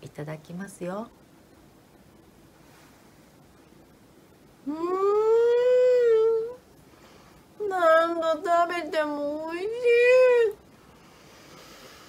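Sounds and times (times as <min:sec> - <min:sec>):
woman humming mmm while chewing: 0:04.6 - 0:06.6.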